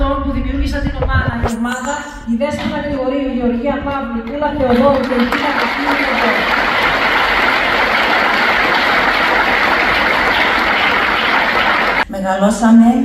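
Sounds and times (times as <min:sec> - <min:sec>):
audience applauding: 0:04.7 - 0:12.0.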